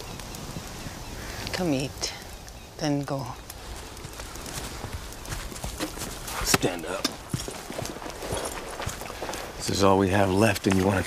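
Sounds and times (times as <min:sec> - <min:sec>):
horse hooves clopping: 0:02.9 - 0:11.0.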